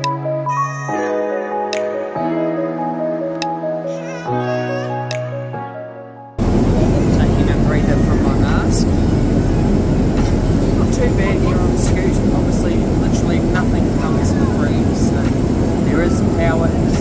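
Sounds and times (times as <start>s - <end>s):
airliner cabin roar: 6.4s - 17.0s.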